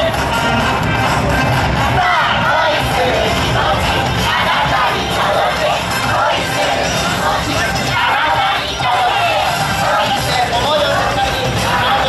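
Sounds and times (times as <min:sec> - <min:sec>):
loud dance music over speakers: 0:00.0 - 0:12.0
many voices shouting together: 0:01.8 - 0:12.0.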